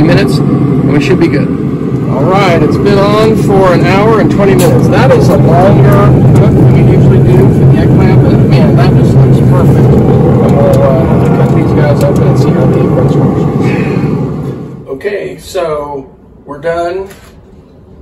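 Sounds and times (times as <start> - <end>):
man talking: 0.0 - 14.1, 14.8 - 17.2
wind buffeting microphone: 0.0 - 14.9.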